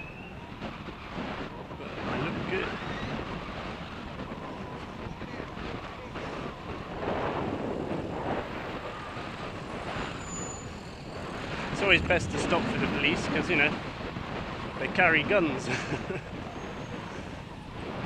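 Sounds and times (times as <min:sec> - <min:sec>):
bicycle road noise: 0:00.0 - 0:18.0
wind noise on microphone: 0:00.0 - 0:18.0.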